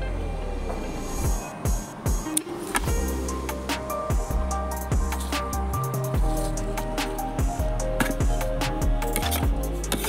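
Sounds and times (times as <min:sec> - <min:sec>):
deep kick-drum thumps: 0:04.1 - 0:05.2, 0:07.4 - 0:09.6.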